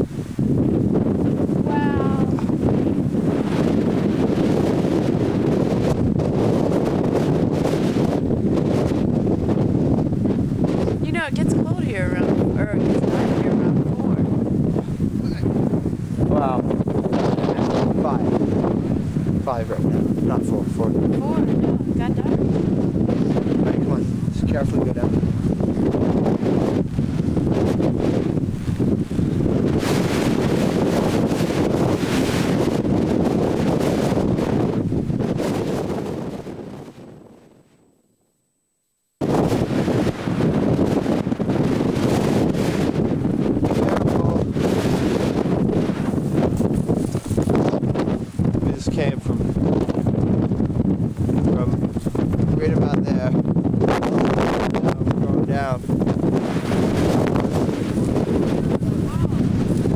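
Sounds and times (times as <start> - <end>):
wind on microphone: 0.0 - 59.9.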